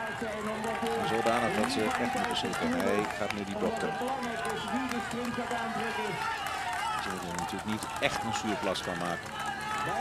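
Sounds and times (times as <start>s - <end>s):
man talking: 0.0s - 6.2s, 7.0s - 9.2s
crowd noise: 0.0s - 10.0s.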